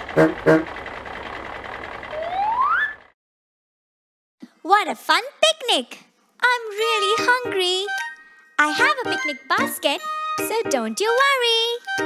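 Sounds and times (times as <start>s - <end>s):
cartoon truck engine rumble: 0.0s - 3.2s.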